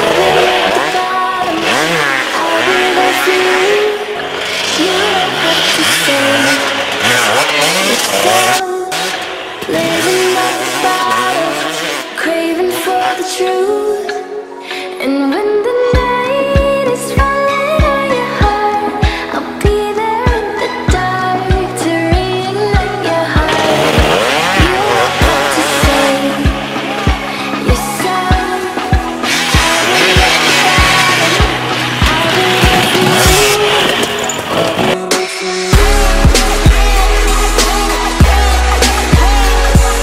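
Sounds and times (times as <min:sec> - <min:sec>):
dirt bike engine revving: 0:00.0 - 0:12.4, 0:22.2 - 0:40.0
music with thumping beat: 0:16.0 - 0:33.7, 0:34.9 - 0:40.0.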